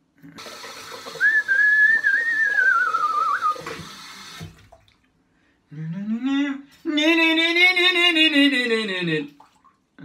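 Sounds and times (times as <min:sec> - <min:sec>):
tap water running into sink: 0:00.3 - 0:05.0
high wavering whistle: 0:01.2 - 0:03.7.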